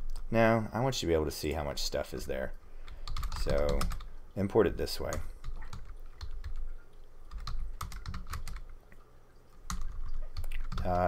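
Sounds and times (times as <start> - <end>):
typing on computer keyboard: 2.9 - 4.1, 5.1 - 6.7, 7.3 - 8.8, 9.7 - 11.0.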